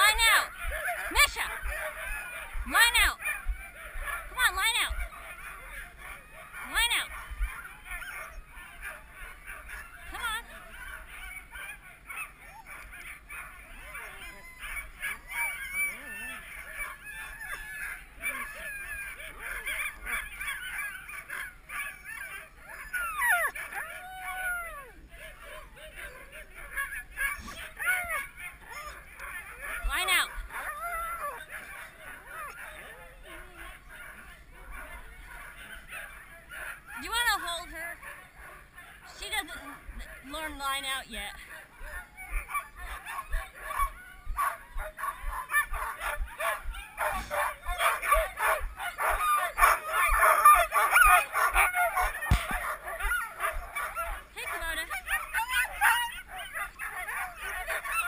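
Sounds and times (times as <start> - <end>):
dogs yelping and howling: 0.0 - 58.0.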